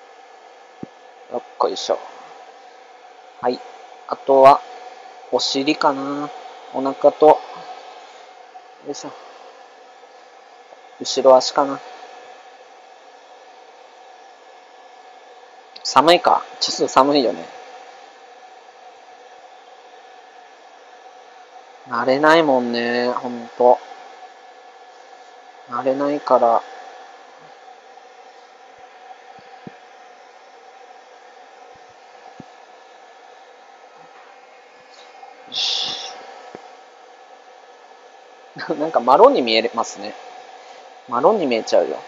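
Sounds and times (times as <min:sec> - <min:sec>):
faint steady hum: 0:00.0 - 0:42.0
pet dryer blower hissing: 0:00.0 - 0:42.0.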